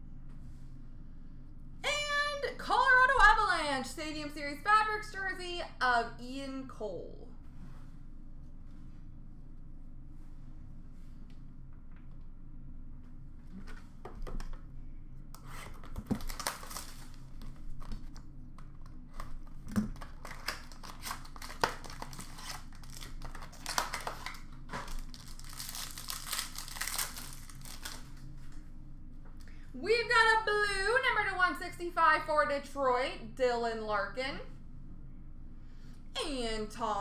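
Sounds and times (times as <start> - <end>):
low room hum: 0.0 - 37.0
wrappers torn and crinkled: 15.7 - 18.2, 19.1 - 28.6.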